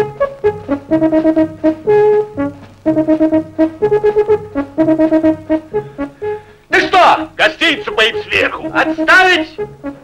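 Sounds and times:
brass instruments playing melody: 0.0 - 9.9.

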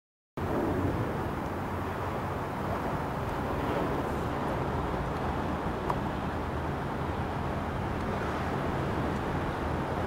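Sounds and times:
outdoor rumble and hiss: 0.4 - 10.0.

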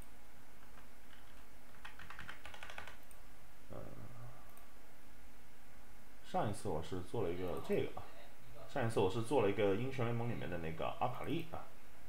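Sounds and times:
typing on computer keyboard: 0.6 - 3.2.

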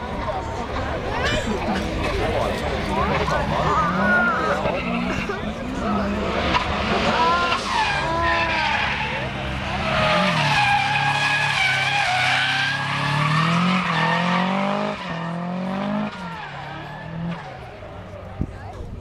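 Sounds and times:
car engine revving hard: 5.8 - 17.7.

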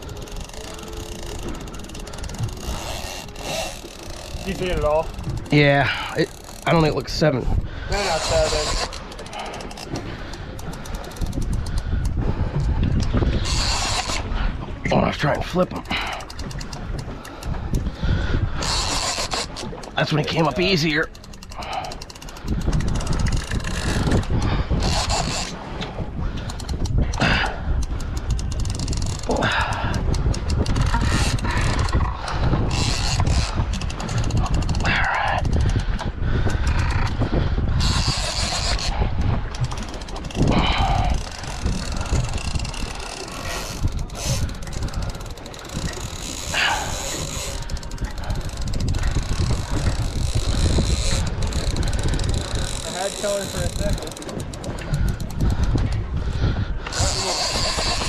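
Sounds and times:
fishing reel clicking and whirring: 0.0 - 58.0
wind rumbling on microphone: 0.0 - 58.0.

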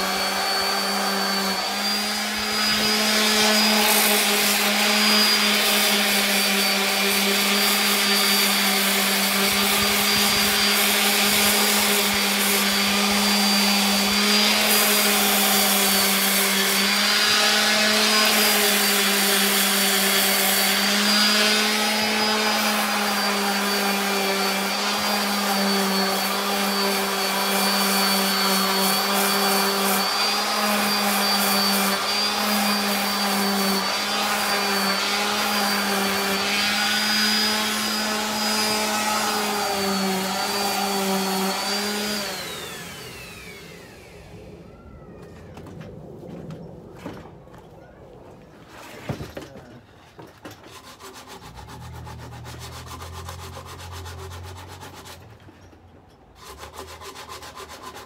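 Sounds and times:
orbital sander sanding wood: 0.0 - 44.6, 48.6 - 55.4, 56.4 - 58.0.

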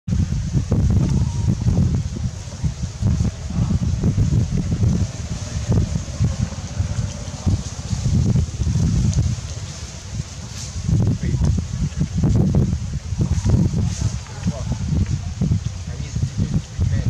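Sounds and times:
wind buffeting microphone: 0.1 - 17.0.

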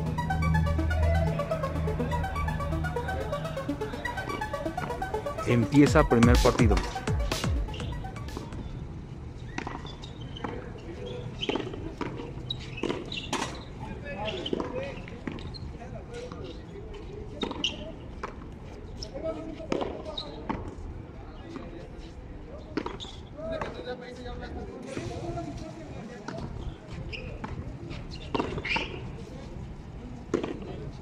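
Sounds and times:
voices of players and onlookers: 10.2 - 31.0.

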